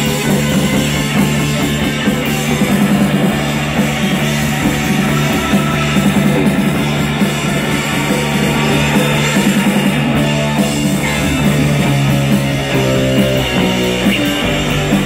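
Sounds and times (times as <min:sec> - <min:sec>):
drums beating: 0:00.0 - 0:15.0
electric guitar: 0:00.0 - 0:15.0.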